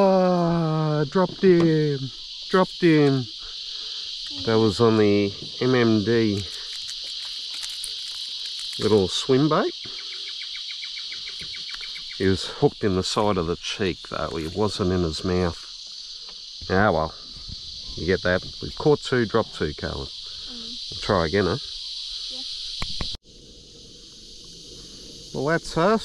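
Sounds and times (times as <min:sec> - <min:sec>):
insects droning: 0:00.0 - 0:26.0.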